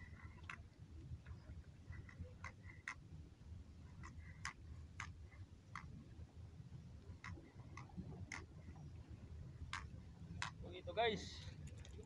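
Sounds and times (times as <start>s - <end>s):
low steady rumble: 0.0s - 12.0s
faint sharp clicks: 7.2s - 8.8s.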